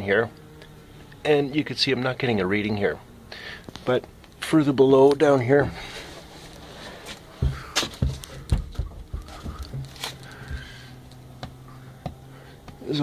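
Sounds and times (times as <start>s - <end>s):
low steady hum: 0.0s - 13.0s
knocks and clicks on wood: 7.4s - 10.8s, 11.4s - 12.8s.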